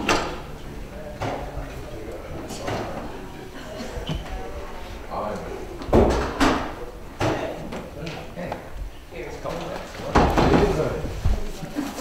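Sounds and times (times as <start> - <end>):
indistinct conversation: 0.0 - 12.0.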